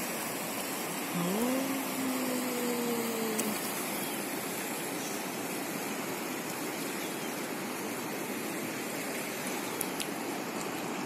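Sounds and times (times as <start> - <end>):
river rushing over stones: 0.0 - 11.0
long call: 1.1 - 3.6.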